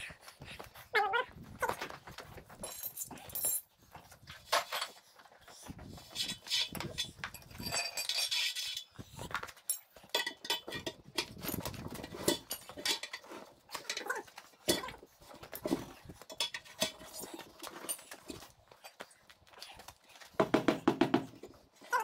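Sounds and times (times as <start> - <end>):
tyre irons clinking on steel rim: 6.3 - 19.0.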